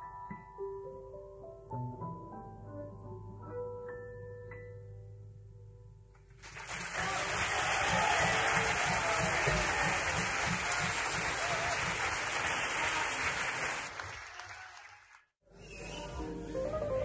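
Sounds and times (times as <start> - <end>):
audience applauding: 6.4 - 15.3.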